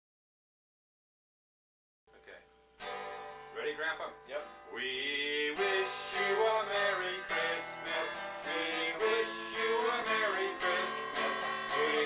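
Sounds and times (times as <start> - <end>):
acoustic guitar chord strummed: 2.4 - 12.0.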